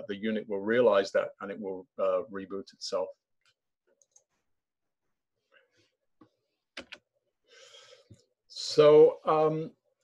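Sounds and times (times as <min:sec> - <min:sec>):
man speaking: 0:00.0 - 0:03.3, 0:08.5 - 0:09.9.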